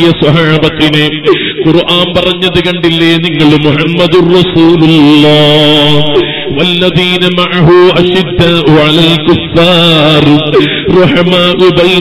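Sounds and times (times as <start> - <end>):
man chanting melodic recitation: 0.0 - 12.0.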